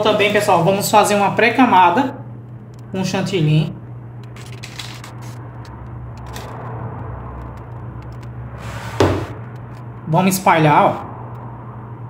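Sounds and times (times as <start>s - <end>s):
steady low hum: 0.0s - 12.0s
faint clicks and scrapes: 4.2s - 8.7s.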